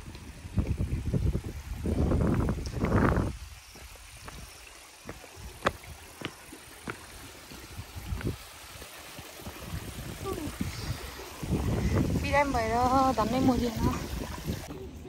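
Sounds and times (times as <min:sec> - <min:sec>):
footsteps on bare rock: 0:02.5 - 0:08.9.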